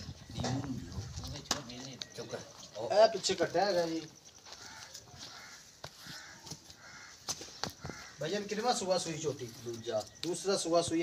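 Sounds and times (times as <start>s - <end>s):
crow cawing: 4.4s - 8.5s.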